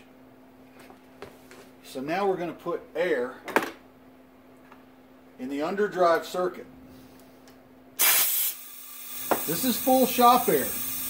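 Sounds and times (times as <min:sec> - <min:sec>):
compressed air hissing: 0:08.0 - 0:11.0.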